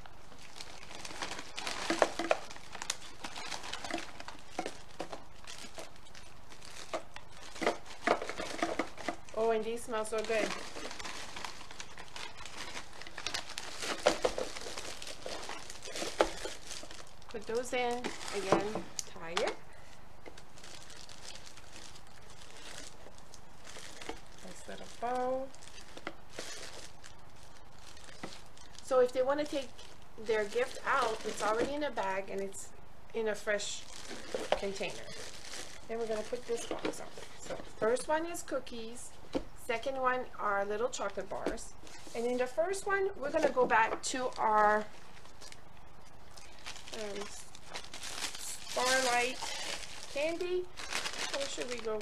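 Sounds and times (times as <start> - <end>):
plastic wrapper crinkling: 0.0 - 52.0.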